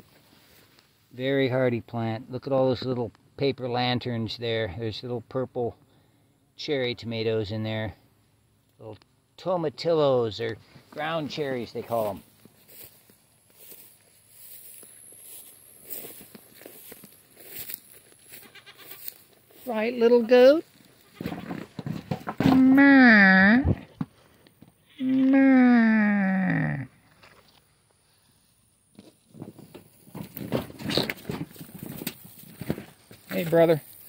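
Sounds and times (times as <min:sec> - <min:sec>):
rustling in tall grass: 0:00.0 - 0:01.4, 0:10.6 - 0:21.2, 0:28.0 - 0:34.0
goat hooves knocking and scuffing: 0:10.9 - 0:22.7, 0:28.9 - 0:34.0
goats bleating faintly: 0:18.3 - 0:19.2.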